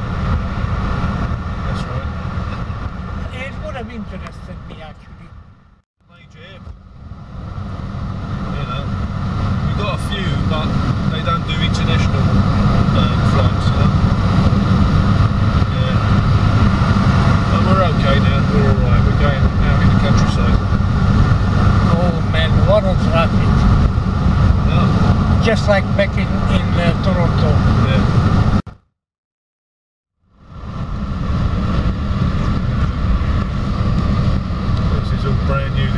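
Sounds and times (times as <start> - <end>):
tyre and engine rumble in car: 0.0 - 28.6, 30.3 - 35.9.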